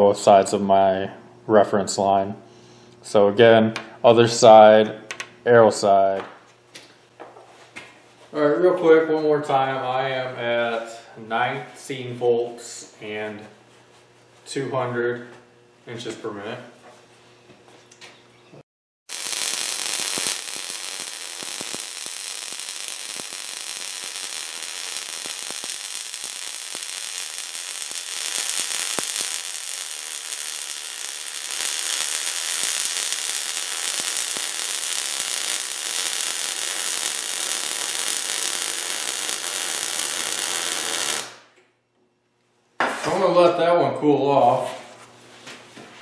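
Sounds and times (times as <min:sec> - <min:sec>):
welding arc crackling: 0:19.1 - 0:41.6.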